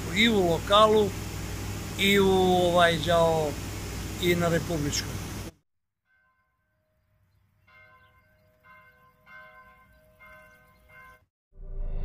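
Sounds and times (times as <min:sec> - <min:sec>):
faint bell ringing: 0:06.1 - 0:11.3.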